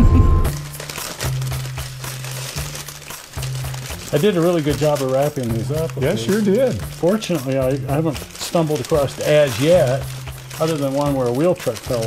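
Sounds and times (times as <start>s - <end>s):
background music with low bass: 0.0s - 12.0s
packing paper crinkling: 0.5s - 12.0s.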